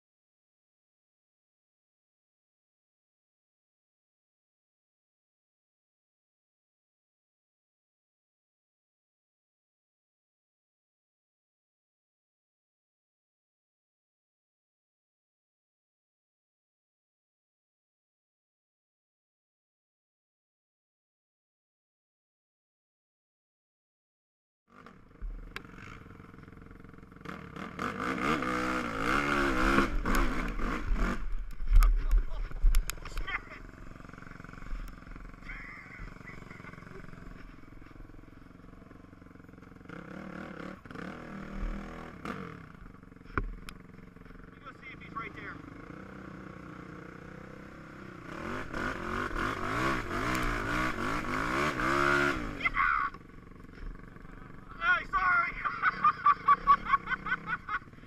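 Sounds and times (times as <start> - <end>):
quad engine revving: 24.7 - 58.0.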